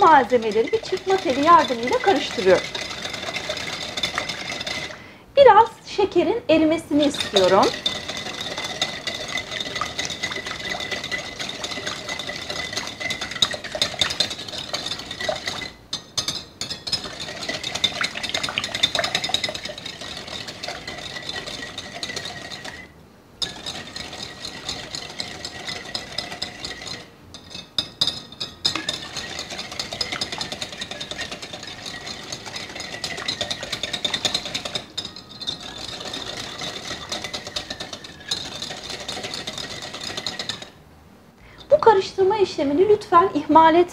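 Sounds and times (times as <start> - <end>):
wire whisk clinking in glass bowl: 0.0 - 5.0, 7.0 - 40.8.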